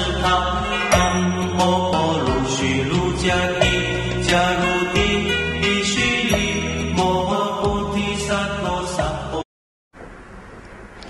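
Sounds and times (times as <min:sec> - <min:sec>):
instrumental backing: 0:00.0 - 0:08.2.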